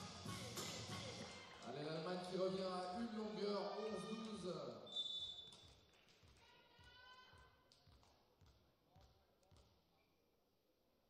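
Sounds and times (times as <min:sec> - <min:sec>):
short high whistle: 0:04.9 - 0:05.6.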